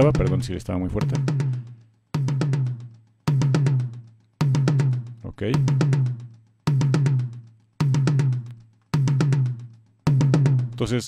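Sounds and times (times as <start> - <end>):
tom-tom drum hits: 0.0 - 10.9.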